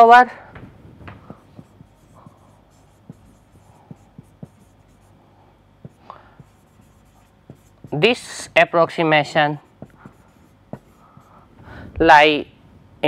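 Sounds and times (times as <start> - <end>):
marker writing on whiteboard: 1.1 - 11.5.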